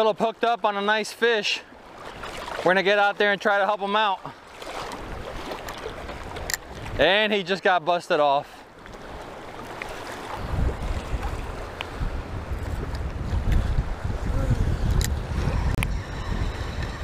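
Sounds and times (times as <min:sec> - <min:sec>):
waves splashing: 0:00.0 - 0:17.0
wind buffeting microphone: 0:04.8 - 0:07.0, 0:08.9 - 0:17.0.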